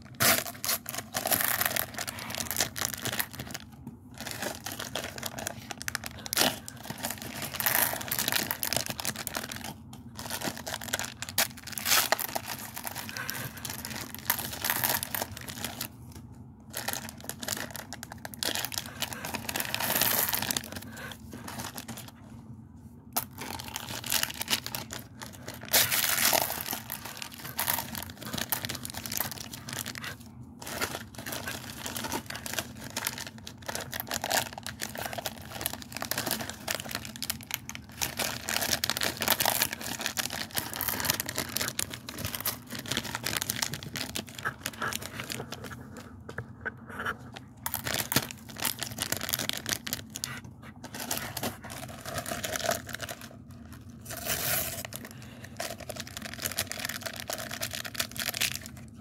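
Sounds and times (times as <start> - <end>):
plastic wrappers crinkling and tearing: 0.0 - 22.2, 23.2 - 59.0.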